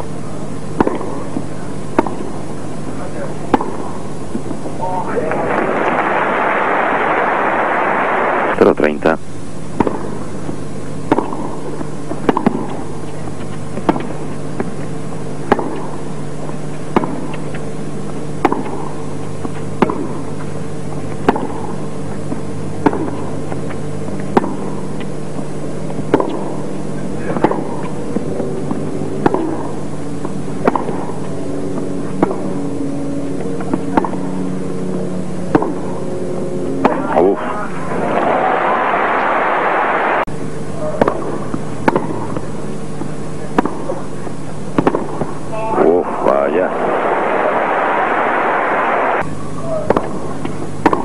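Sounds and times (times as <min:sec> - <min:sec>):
tennis rackets striking ball: 0:00.7 - 0:02.5, 0:03.4 - 0:04.7, 0:09.7 - 0:16.1, 0:16.9 - 0:17.6, 0:18.4 - 0:26.7, 0:27.3 - 0:31.4, 0:32.0 - 0:32.6, 0:33.6 - 0:34.3, 0:35.5 - 0:36.0, 0:36.7 - 0:37.2, 0:40.8 - 0:44.1, 0:44.7 - 0:45.4, 0:49.7 - 0:51.0.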